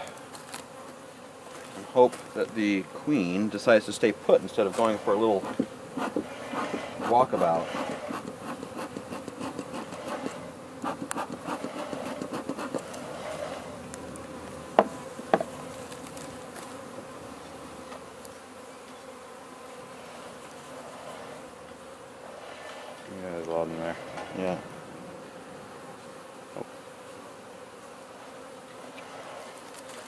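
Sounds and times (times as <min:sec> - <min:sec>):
honeybees buzzing: 0:00.0 - 0:30.0.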